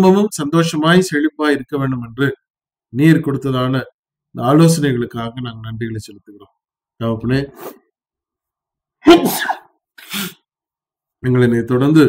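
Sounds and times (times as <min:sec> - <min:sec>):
man sneezing: 0:09.1 - 0:10.4.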